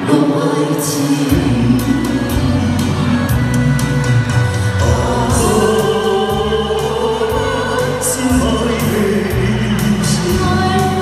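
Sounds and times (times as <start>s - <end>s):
several voices singing amplified: 0.0s - 11.0s
backing track with bass and drums: 1.3s - 11.0s.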